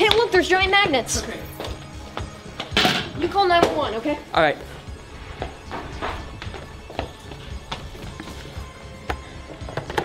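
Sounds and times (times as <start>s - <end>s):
footsteps on hard floor: 0.0s - 2.7s, 4.6s - 9.7s
background film music: 0.0s - 10.0s.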